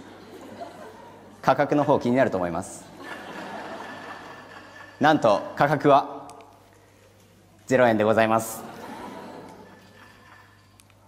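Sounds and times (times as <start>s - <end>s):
audience laughter: 0.0s - 1.4s, 2.8s - 5.0s, 8.5s - 10.4s.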